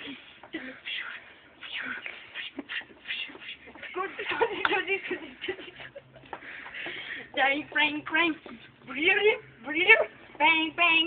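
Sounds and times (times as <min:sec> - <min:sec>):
hissy scuffs: 0:01.6 - 0:04.0.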